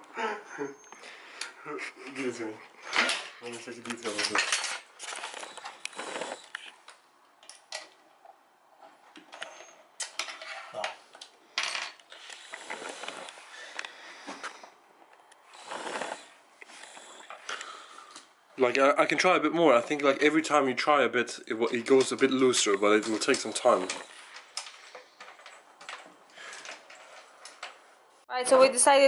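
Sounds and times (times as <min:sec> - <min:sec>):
screws and tools clinking on metal: 0:03.9 - 0:06.0, 0:21.6 - 0:27.8.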